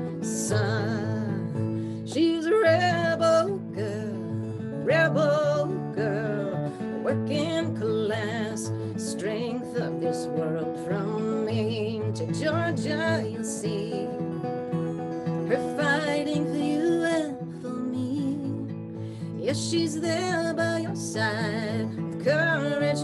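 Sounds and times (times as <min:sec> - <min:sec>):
fingerpicked acoustic guitar: 0:00.0 - 0:23.0
woman singing with vibrato: 0:00.1 - 0:14.3, 0:15.5 - 0:18.8, 0:19.4 - 0:23.0.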